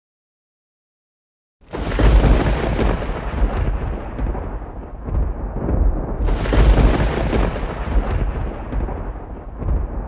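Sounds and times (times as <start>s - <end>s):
deep rumble: 1.8s - 10.0s.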